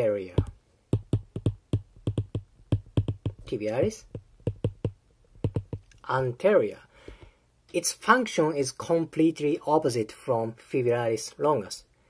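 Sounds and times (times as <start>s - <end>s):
stylus tapping on glass screen: 0.4s - 5.9s.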